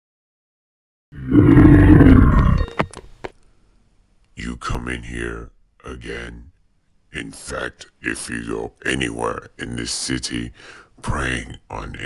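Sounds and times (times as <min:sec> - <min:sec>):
deep monster roar: 0:01.2 - 0:02.9.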